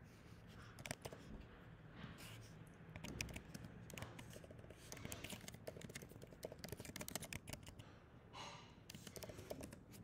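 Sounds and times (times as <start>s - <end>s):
faint keyboard typing: 0.5s - 1.5s, 2.2s - 7.9s, 8.9s - 10.0s.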